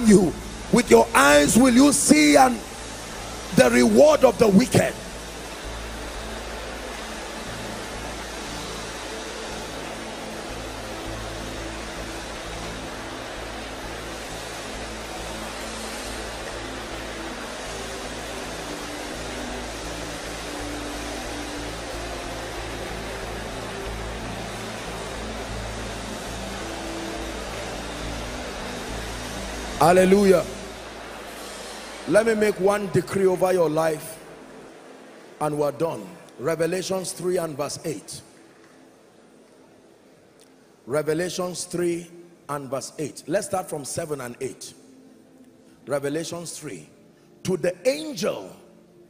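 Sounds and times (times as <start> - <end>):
congregation praying aloud: 0.0 - 2.7, 3.5 - 5.1.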